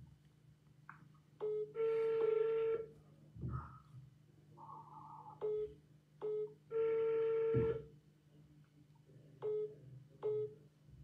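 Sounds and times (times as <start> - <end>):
telephone call-progress beeps: 5.4 - 7.9, 9.4 - 10.6.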